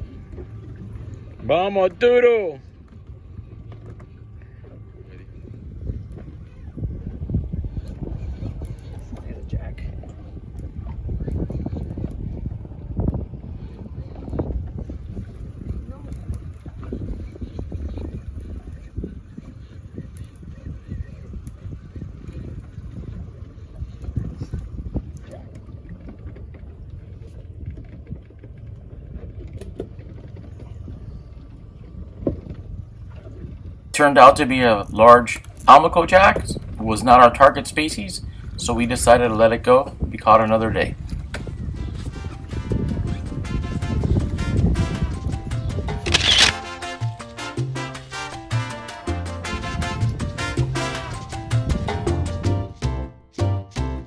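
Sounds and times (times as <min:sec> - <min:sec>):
wind buffeting microphone: 0:00.0 - 0:52.8
water moving around boat hull: 0:00.0 - 0:52.9.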